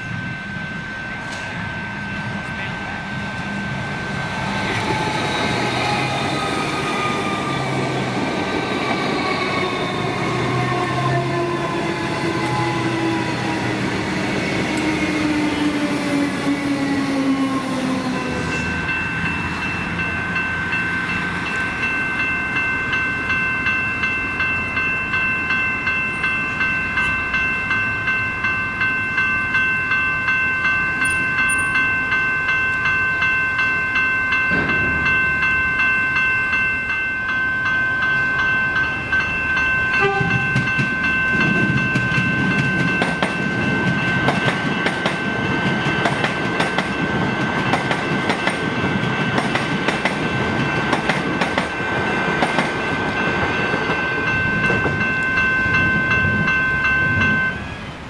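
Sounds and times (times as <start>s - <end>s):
level crossing bells ringing: 0.0s - 57.8s
electric train rumble: 0.0s - 58.0s
wheels clacking over rails: 40.0s - 55.1s.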